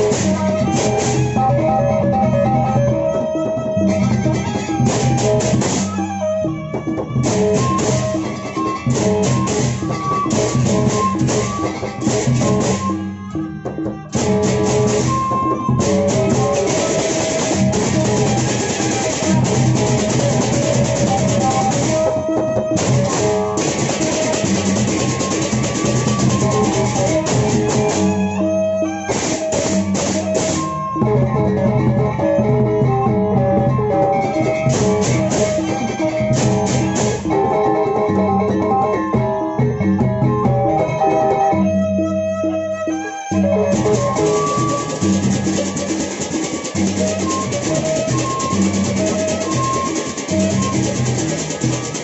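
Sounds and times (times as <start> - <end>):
barrel drums beaten by hand: 0.0 - 2.9, 3.8 - 28.4, 29.1 - 31.9, 32.6 - 41.0, 43.4 - 52.0
cymbals clashing: 14.2 - 22.1, 22.7 - 28.2, 29.1 - 30.8.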